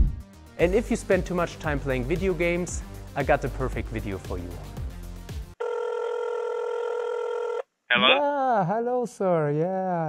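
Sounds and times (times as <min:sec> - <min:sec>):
background music: 0:00.0 - 0:05.6
telephone call tone: 0:05.6 - 0:08.2.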